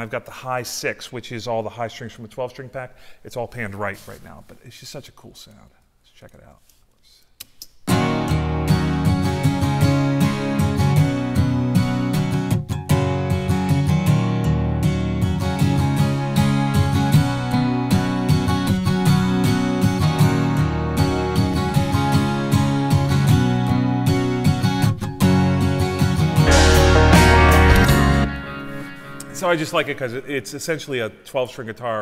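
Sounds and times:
strummed acoustic guitars: 0:07.9 - 0:29.8.

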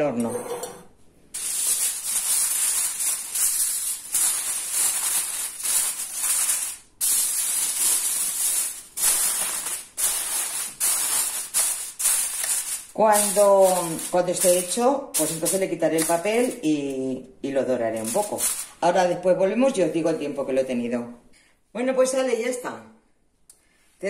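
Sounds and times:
aluminium foil crinkling: 0:01.4 - 0:17.0, 0:17.9 - 0:18.8.

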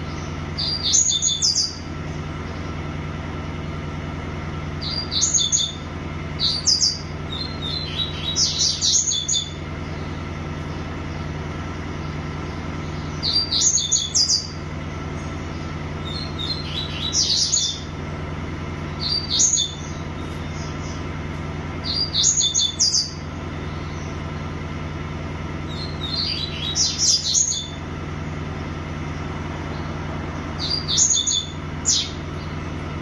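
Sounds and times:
songbird singing: 0:00.0 - 0:33.0
steady low hum: 0:00.0 - 0:33.0.

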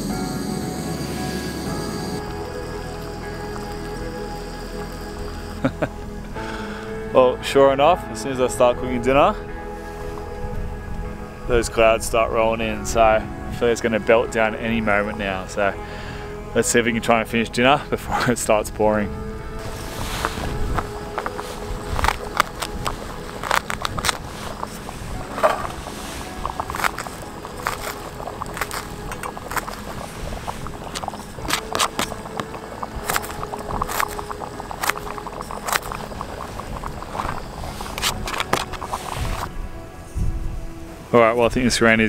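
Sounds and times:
background music: 0:00.0 - 0:42.0.

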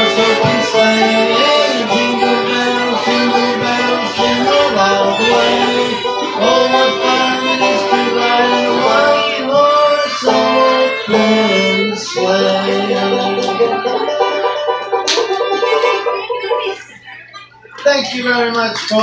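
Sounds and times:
bowed fiddle melody: 0:00.0 - 0:17.0
picked banjo: 0:00.0 - 0:17.5.

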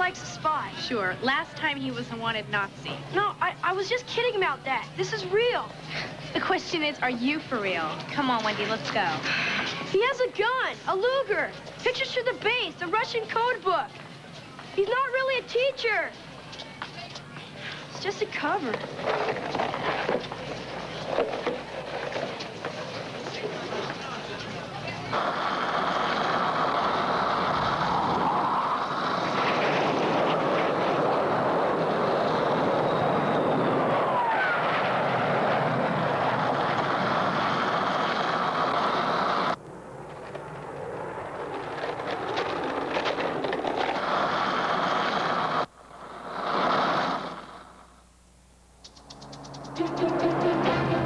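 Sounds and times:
skateboard wheels rolling on pavement: 0:00.0 - 0:47.9, 0:48.8 - 0:51.0
rising and falling whoosh: 0:48.9 - 0:51.0.

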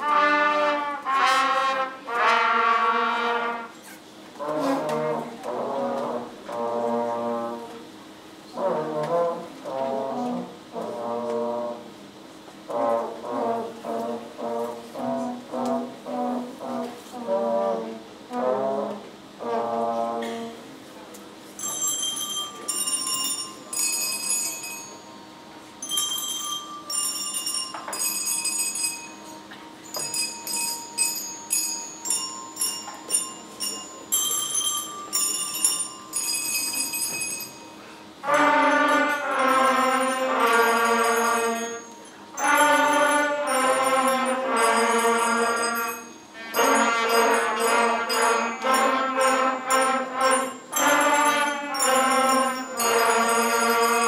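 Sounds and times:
soft bell-like notes: 0:21.6 - 0:37.9, 0:38.7 - 0:54.0.

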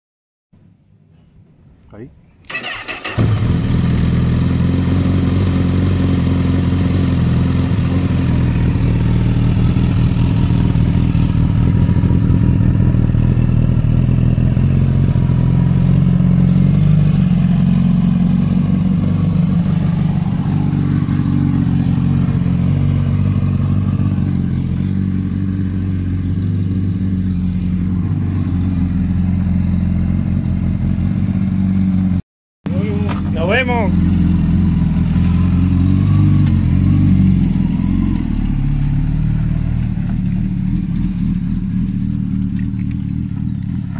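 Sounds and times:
motorcycle engine starting and idling: 0:02.4 - 0:43.9.

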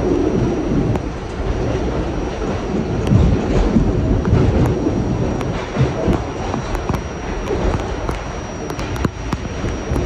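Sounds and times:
subway car wheels rumbling on rail: 0:00.0 - 0:10.0.

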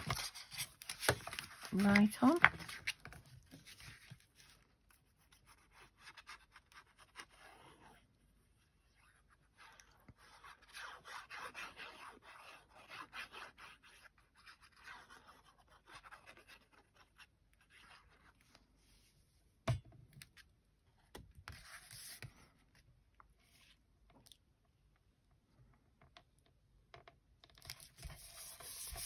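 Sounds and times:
card rustling: 0:00.0 - 0:04.6.

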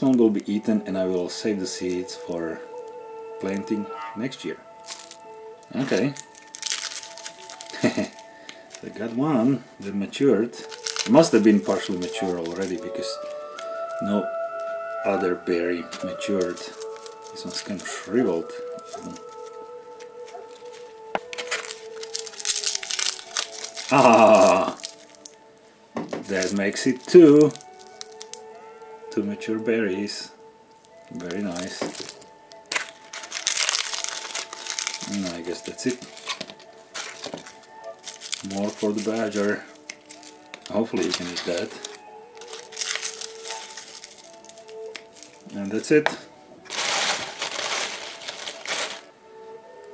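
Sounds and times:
dry husk crinkling and tearing: 0:00.0 - 0:49.9.

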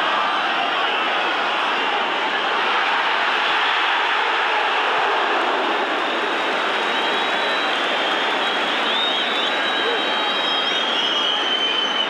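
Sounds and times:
stadium crowd roar: 0:00.0 - 0:12.0
high whistle tones: 0:06.8 - 0:12.0.

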